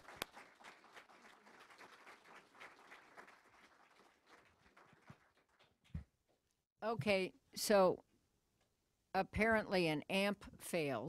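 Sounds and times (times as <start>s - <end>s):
audience applauding: 0.0s - 6.0s
sharp claps close to microphone: 0.0s - 6.1s.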